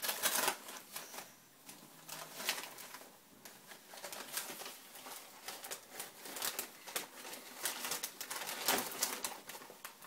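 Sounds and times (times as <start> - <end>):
paper crinkling and rustling: 0.0 - 10.0.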